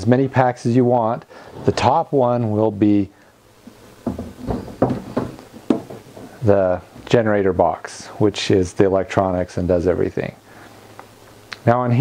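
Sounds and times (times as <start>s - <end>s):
box knocking and clunking: 4.0s - 6.4s.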